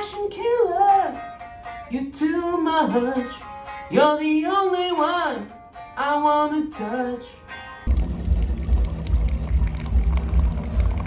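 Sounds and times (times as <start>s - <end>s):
coffee maker humming: 7.9s - 11.0s
coffee pouring into mug: 7.9s - 11.0s.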